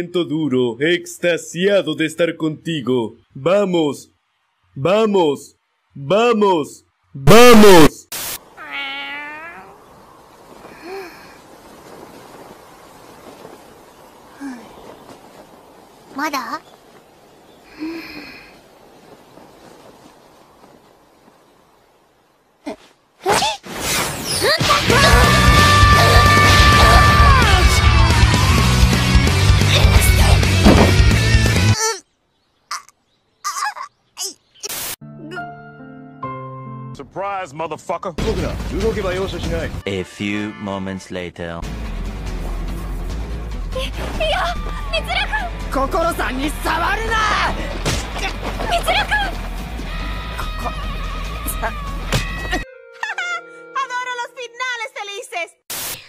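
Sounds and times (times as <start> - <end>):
static noise burst: 7.3 - 22.6, 34.6 - 35.0, 55.7 - 56.0
cat meowing: 8.6 - 9.8.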